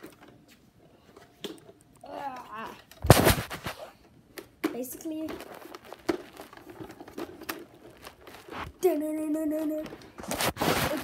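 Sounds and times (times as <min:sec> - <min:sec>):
plastic rustling: 0:05.0 - 0:11.0.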